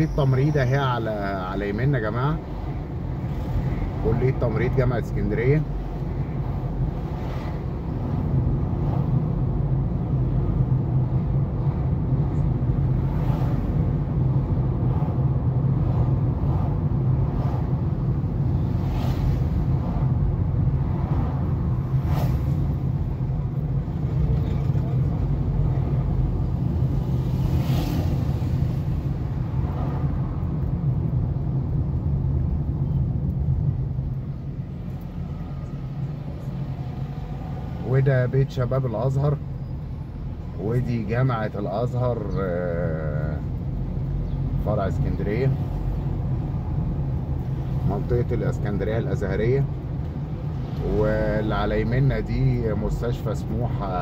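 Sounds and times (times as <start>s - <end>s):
car engine and tyres hum: 0.0s - 54.0s
passing vehicles: 0.0s - 54.0s.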